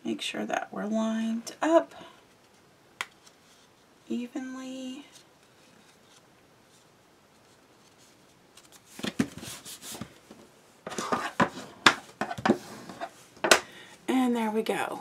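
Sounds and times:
paper rustling and scraping: 0:05.4 - 0:10.3, 0:10.9 - 0:13.3.

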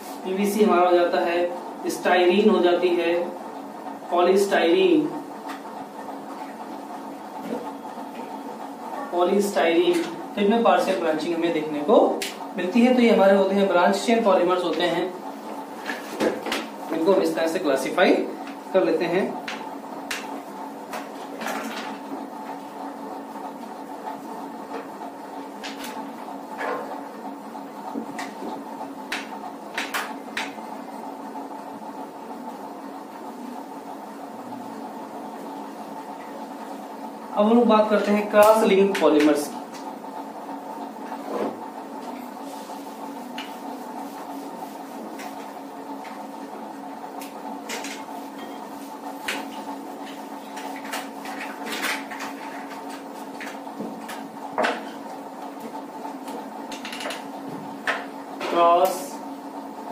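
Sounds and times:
room hum and hiss: 0:00.0 - 0:59.9.

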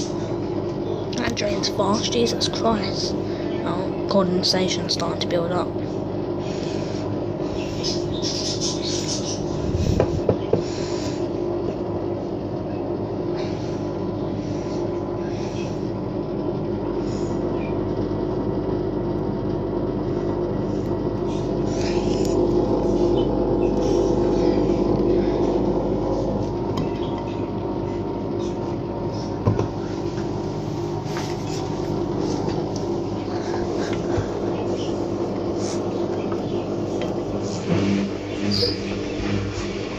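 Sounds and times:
washing machine motor hum: 0:00.0 - 0:39.9.

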